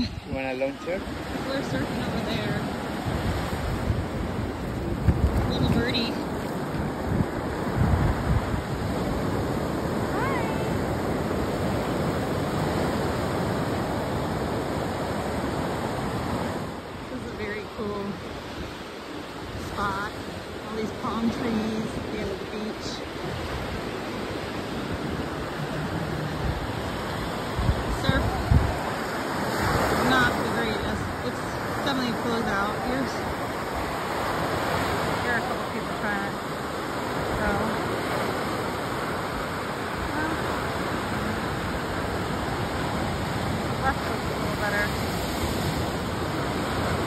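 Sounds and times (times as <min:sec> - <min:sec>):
waves breaking on beach: 0:00.0 - 0:47.0.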